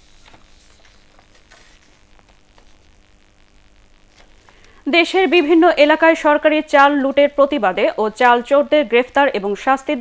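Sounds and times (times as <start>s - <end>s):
faint crackling noise: 0.0s - 10.0s
low steady hum: 0.0s - 10.0s
woman speaking: 4.8s - 10.0s.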